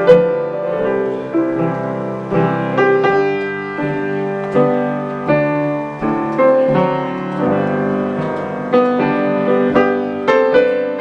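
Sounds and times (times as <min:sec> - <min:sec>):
slow waltz on piano: 0:00.0 - 0:11.0.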